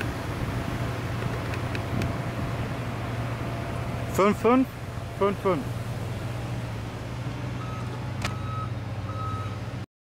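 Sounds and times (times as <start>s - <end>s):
low engine hum: 0.0s - 9.9s
reversing alarm beeps: 7.6s - 9.6s.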